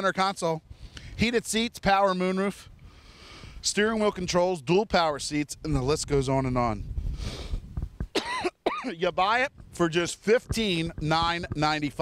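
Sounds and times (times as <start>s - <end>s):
man speaking: 0.0s - 2.7s, 3.6s - 6.8s, 8.7s - 12.0s
man coughing: 8.1s - 9.0s.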